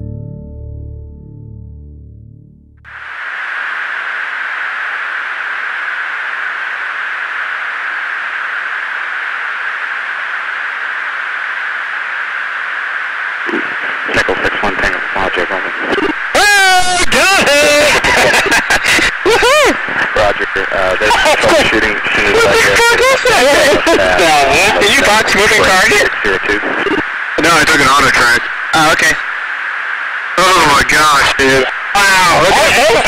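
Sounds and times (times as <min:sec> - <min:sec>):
intercom radio hiss: 0:02.9 - 0:33.0
aircrew voices over radio: 0:13.5 - 0:29.4, 0:30.3 - 0:33.0.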